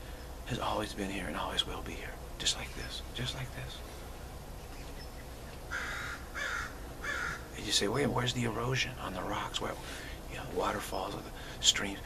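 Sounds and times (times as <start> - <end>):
bird calling: 3.7 - 8.2.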